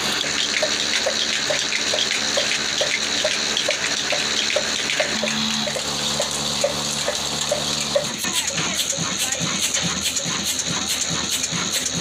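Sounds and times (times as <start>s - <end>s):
constant engine hiss: 0.0s - 12.0s
diesel engine knocking: 0.0s - 12.0s.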